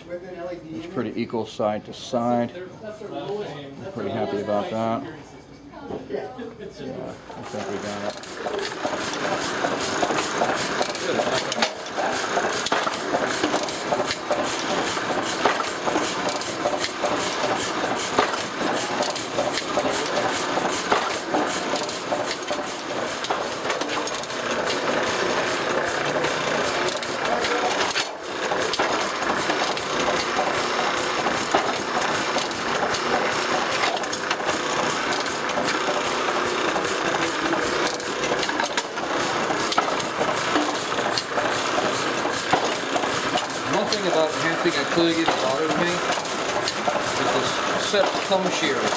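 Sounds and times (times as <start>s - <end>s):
printing press clattering: 7.4s - 48.9s.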